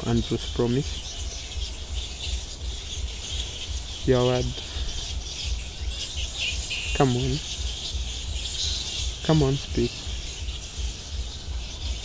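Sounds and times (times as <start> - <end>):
birds chirping: 0.0 - 12.0
insects buzzing: 0.0 - 12.0.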